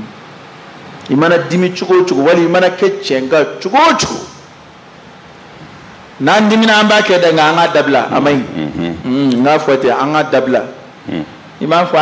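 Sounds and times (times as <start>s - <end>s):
faint microphone hiss: 0.0s - 12.0s
man speaking over loudspeaker: 1.1s - 4.4s, 6.2s - 8.6s, 11.6s - 12.0s.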